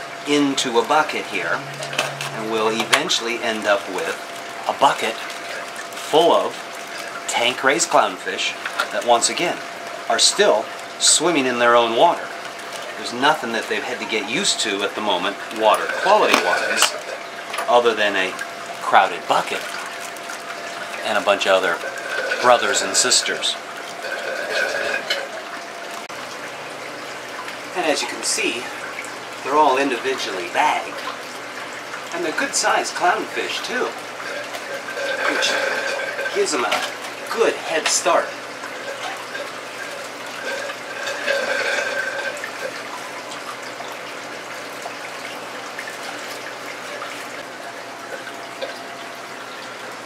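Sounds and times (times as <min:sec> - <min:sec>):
water sloshing in a plastic bucket: 0:00.0 - 0:26.5.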